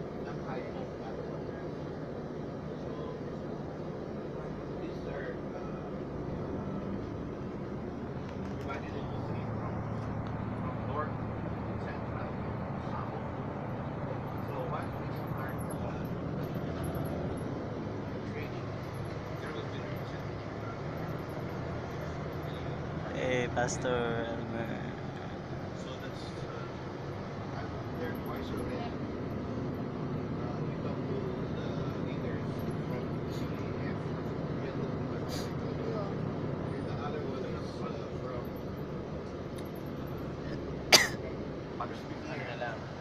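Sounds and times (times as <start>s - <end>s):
bus engine rumble: 0.0s - 43.0s
faint voices: 0.0s - 43.0s
road noise: 0.0s - 43.0s.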